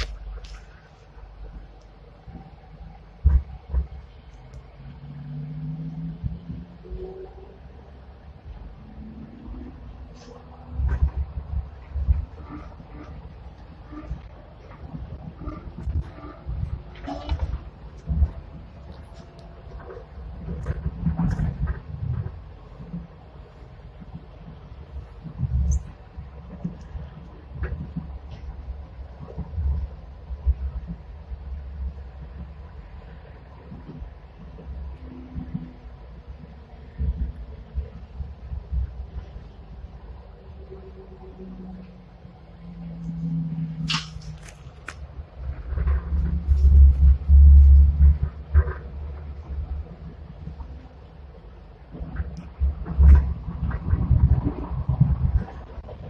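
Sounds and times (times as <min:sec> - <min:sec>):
faint steady hum: 0:00.0 - 0:56.0
train rumbling on track: 0:00.0 - 0:56.0.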